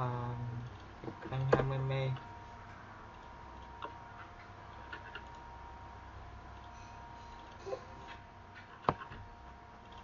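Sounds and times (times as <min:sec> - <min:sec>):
computer mouse clicks: 0:03.1 - 0:05.4, 0:07.4 - 0:09.2.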